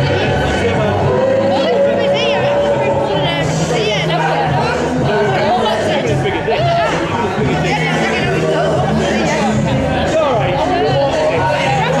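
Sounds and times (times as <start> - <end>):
people chatting: 0.0 - 12.0
soul record over sound system: 0.0 - 12.0.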